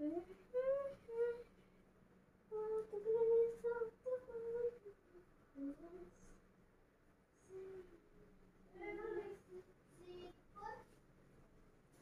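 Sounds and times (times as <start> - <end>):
person humming softly: 0.0 - 1.5, 2.5 - 6.4, 7.4 - 8.0.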